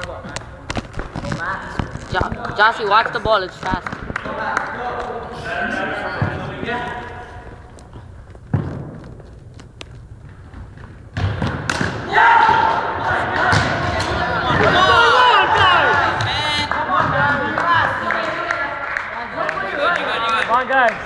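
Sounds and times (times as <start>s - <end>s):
voices echoing in a gymnasium: 0.0s - 9.3s, 11.7s - 21.0s
thud: 8.5s - 9.1s
loud shouting: 12.0s - 18.0s.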